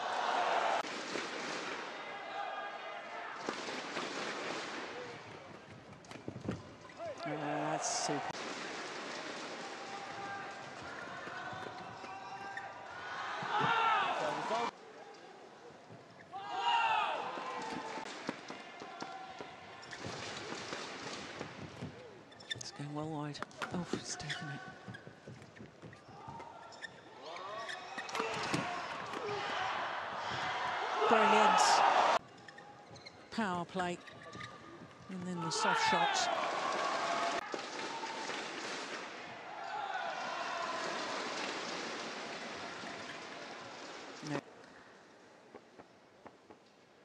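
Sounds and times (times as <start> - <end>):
crowd shouting and cheering: 0.0 - 0.9, 1.7 - 3.8, 9.4 - 14.7, 16.4 - 19.8, 27.2 - 32.2, 35.3 - 43.8.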